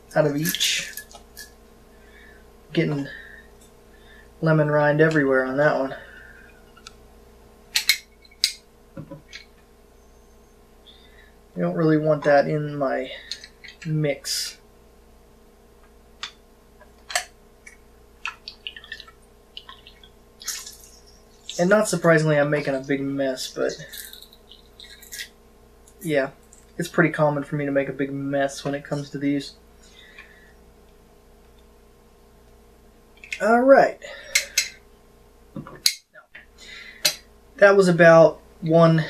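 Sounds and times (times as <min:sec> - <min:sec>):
lemon squish and drip: 0:18.2 - 0:21.7.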